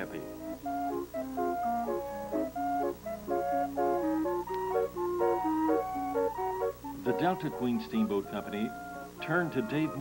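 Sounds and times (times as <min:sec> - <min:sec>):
steam calliope playing a tune: 0:00.0 - 0:10.0.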